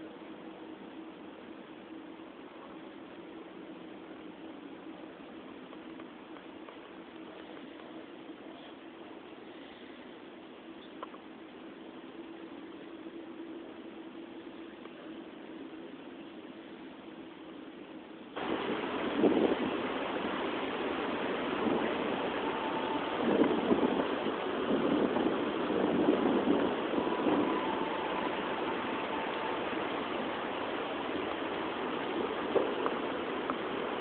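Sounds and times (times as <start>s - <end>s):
dense outdoor hiss: 0.0s - 34.0s.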